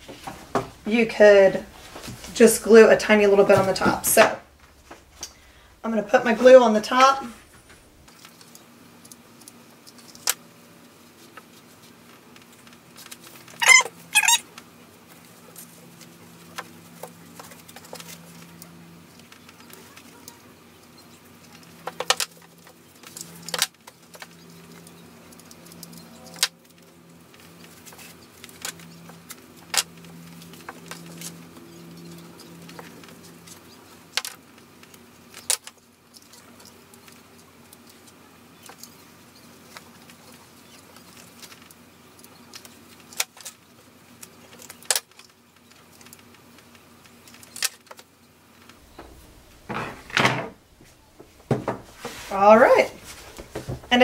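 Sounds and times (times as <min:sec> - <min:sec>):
brief squeak: 0:13.6 - 0:14.4
handling of fabric: 0:50.8 - 0:54.0.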